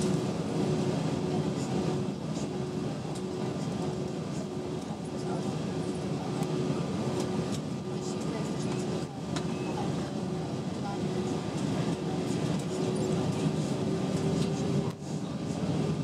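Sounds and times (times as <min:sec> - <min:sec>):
aircraft cabin engine rumble: 0:00.0 - 0:16.0.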